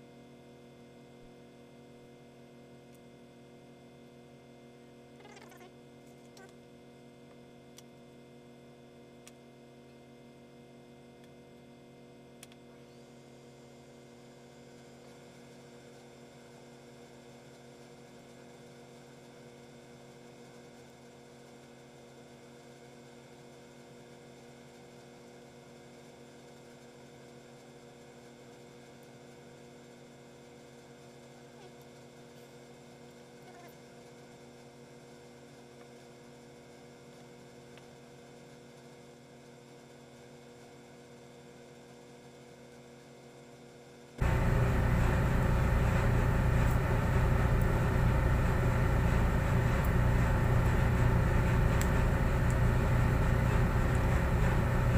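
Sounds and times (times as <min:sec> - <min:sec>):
faint steady hum: 0:44.2 - 0:54.9.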